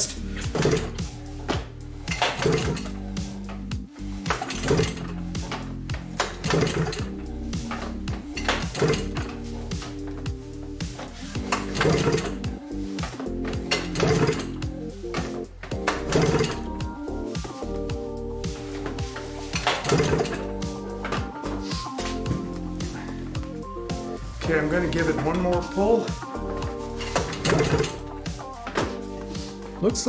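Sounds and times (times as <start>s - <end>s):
background music: 0.0s - 30.0s
engine cranking by recoil starter: 2.1s - 3.6s, 4.3s - 9.4s, 11.4s - 12.4s, 13.7s - 14.6s, 15.8s - 16.8s, 19.6s - 20.5s.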